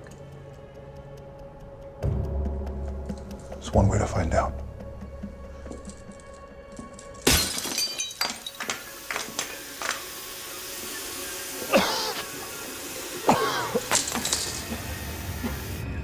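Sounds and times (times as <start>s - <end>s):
film score music: 0.0s - 7.3s
glass fragments tinkling: 5.8s - 10.1s, 13.8s - 14.8s
window glass shattering: 7.0s - 10.1s.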